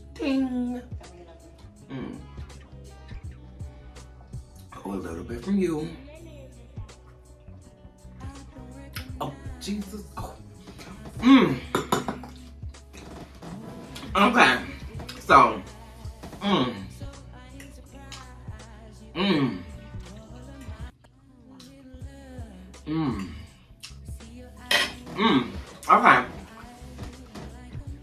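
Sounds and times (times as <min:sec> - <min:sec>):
quiet background music: 0:00.0 - 0:28.0
short vocal sounds: 0:13.6 - 0:17.3, 0:19.1 - 0:20.8, 0:22.7 - 0:24.0, 0:24.7 - 0:27.8.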